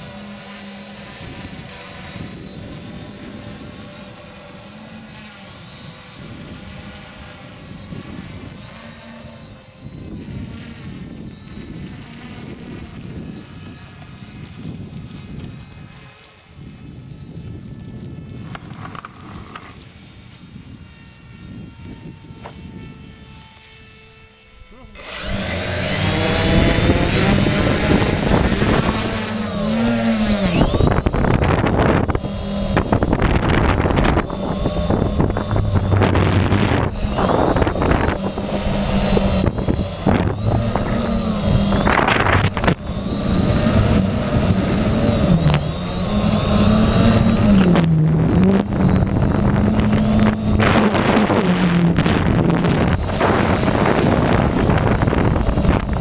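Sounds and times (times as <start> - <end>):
drone motors buzzing: 0.0 - 56.0
wind noise on microphone: 0.0 - 56.0.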